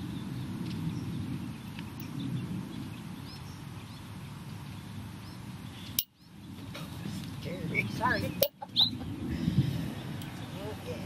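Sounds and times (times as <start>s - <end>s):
small birds chirping: 0.0s - 11.0s
steady low rumble: 0.0s - 11.0s.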